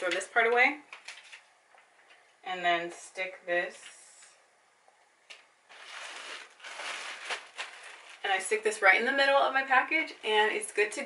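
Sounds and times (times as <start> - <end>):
plastic mailer rustling: 5.7 - 8.6.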